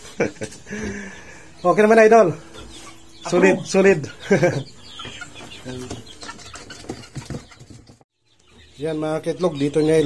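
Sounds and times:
young chickens clucking: 0.0 - 10.0.

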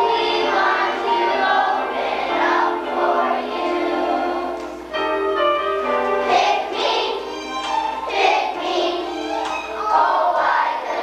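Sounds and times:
children's choir singing: 0.0 - 5.0, 5.8 - 11.0.

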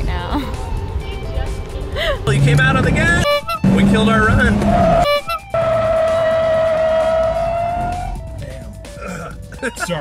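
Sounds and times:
background music: 0.0 - 10.0
tyres squealing: 2.1 - 8.2.

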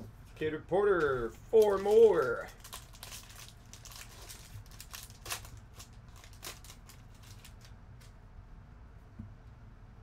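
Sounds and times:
foil wrapper crinkling: 1.5 - 8.1.

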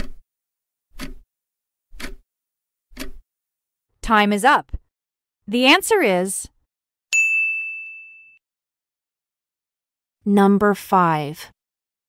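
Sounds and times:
bright ding: 7.2 - 8.4.

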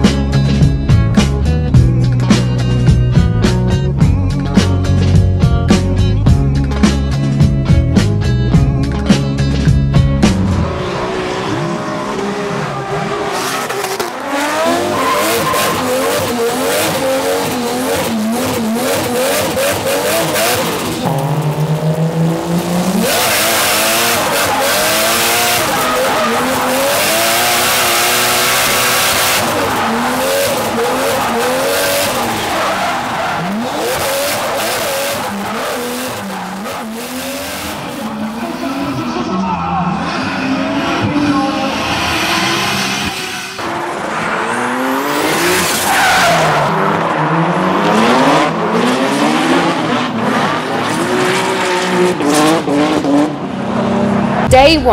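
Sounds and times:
music: 0.0 - 10.8, 54.5 - 54.9
car engines revving: 4.4 - 54.9
tyres squealing and skidding: 10.6 - 21.0, 23.0 - 52.4.

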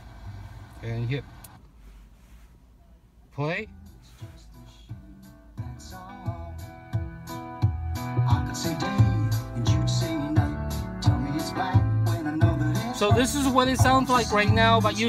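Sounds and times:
song on car radio speakers: 0.0 - 15.0.

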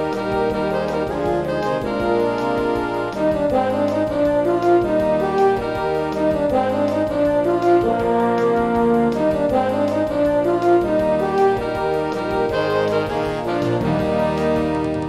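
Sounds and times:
steady drum pattern: 0.0 - 15.0
wind band playing: 0.0 - 15.0.

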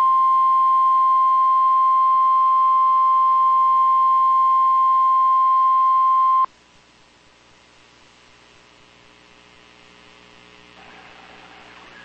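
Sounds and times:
low electrical hum: 0.0 - 12.0
radio static hiss: 6.3 - 12.0.

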